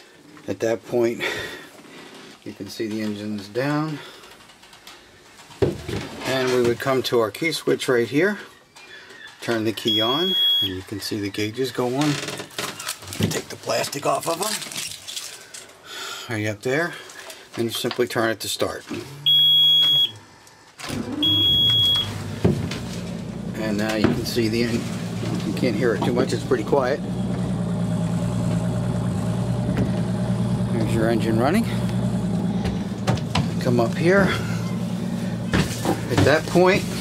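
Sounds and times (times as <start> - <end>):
high electronic warning beep: 9.8 - 10.9, 19.2 - 20.2, 21.2 - 22.2
outboard motor starting and running: 20.8 - 37.0.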